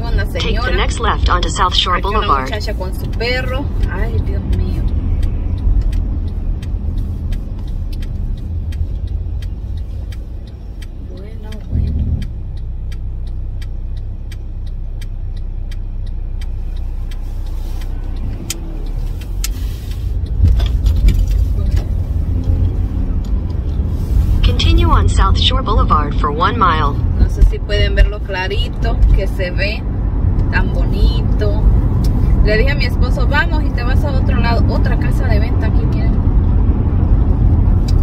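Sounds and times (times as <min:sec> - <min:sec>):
car engine and tyres rumbling: 0:00.0 - 0:38.0
faint regular clicking: 0:02.8 - 0:24.0.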